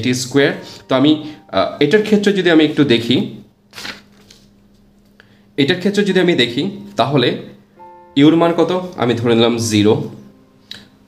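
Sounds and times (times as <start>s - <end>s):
person speaking: 0.0s - 3.5s, 5.6s - 10.4s
faint steady hum: 0.0s - 11.0s.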